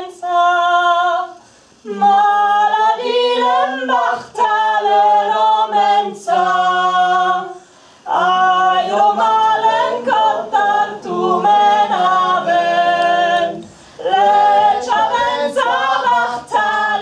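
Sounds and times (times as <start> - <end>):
woman singing unaccompanied: 0.0 - 17.0.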